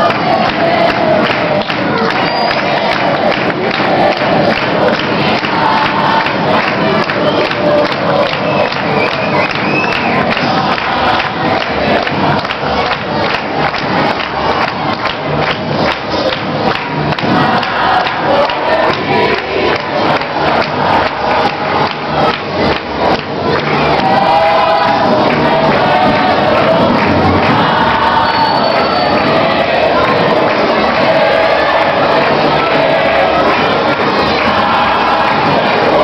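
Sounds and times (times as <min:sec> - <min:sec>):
crowd of voices: 0:00.0 - 0:36.0
group singing: 0:00.0 - 0:36.0
music: 0:00.0 - 0:36.0
steady beat: 0:00.0 - 0:36.0.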